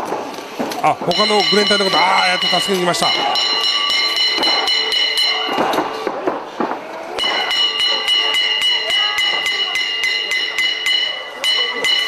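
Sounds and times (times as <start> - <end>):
stick striking knocks: 1.0 - 6.4, 7.2 - 12.0.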